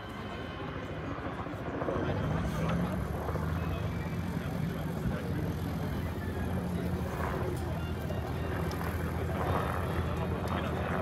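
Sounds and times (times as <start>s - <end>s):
helicopter rotor beating: 0.0s - 11.0s.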